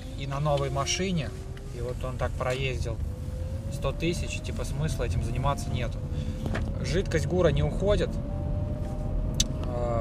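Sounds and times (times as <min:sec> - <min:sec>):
road and engine rumble: 0:00.0 - 0:10.0.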